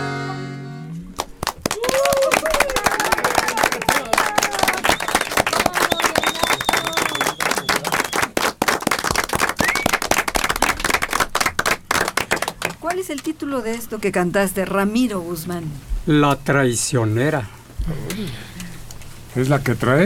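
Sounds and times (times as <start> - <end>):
people clapping: 1.1 - 13.3.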